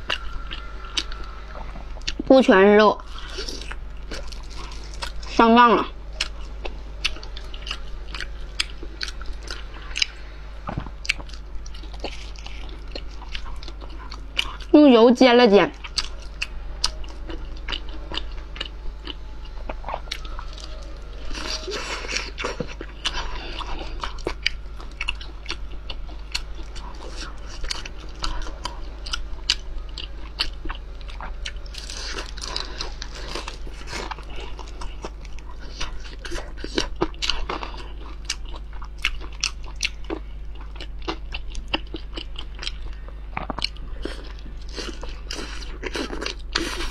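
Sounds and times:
biting and chewing sausage: 3.0 - 5.5, 6.1 - 14.7, 15.7 - 46.9.

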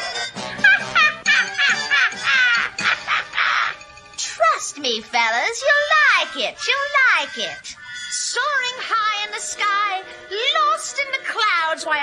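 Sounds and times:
cartoon soundtrack music: 0.0 - 12.0
shrill raspy gliding sounds: 1.8 - 11.9.

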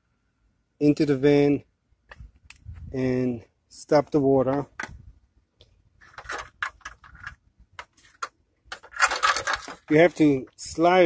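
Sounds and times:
handling clicks and rustles: 5.6 - 10.8.

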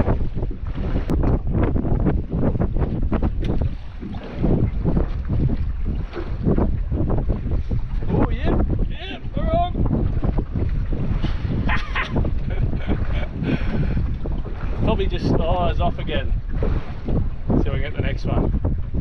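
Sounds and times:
water sloshing around boat: 0.0 - 19.0
wind buffeting microphone: 0.0 - 19.0.

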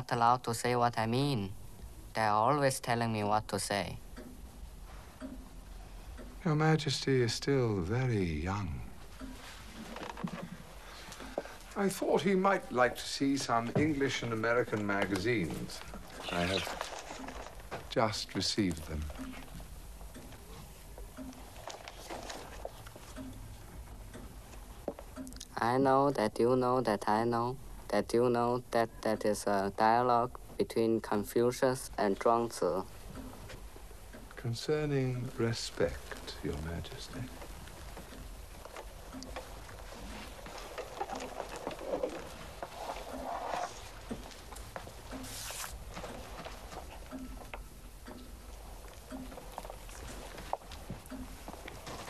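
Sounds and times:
soft regular ticking: 0.0 - 52.0
soft clicks: 4.1 - 4.4, 5.2 - 6.4, 43.9 - 52.0
faint rustling: 8.9 - 25.2, 32.5 - 52.0.

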